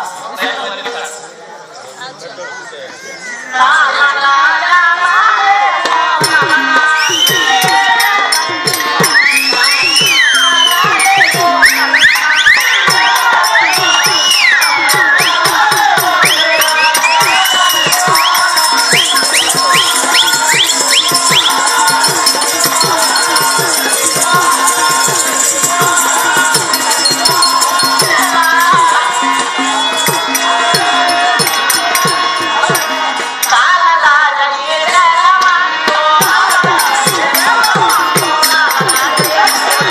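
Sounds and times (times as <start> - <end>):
barrel drum played fast: 6.0 - 33.5, 35.9 - 39.9
jingling small cymbals: 6.2 - 33.6, 36.2 - 39.9.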